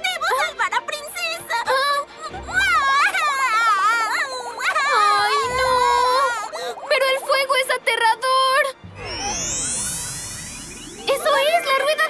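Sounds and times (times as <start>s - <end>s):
shimmering musical sweep: 8.8s - 12.0s.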